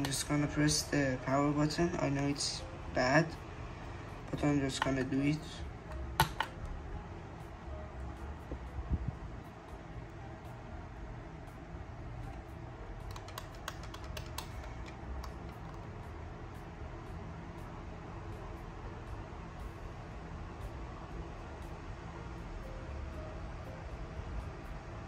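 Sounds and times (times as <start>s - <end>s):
low fan hum: 0.0s - 25.0s
laptop button and key clicks: 6.2s - 6.6s, 13.1s - 15.8s.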